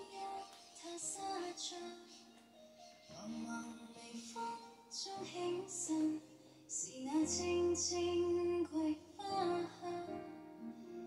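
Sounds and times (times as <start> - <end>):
woman singing over instruments: 0.0 - 2.2, 3.2 - 10.4.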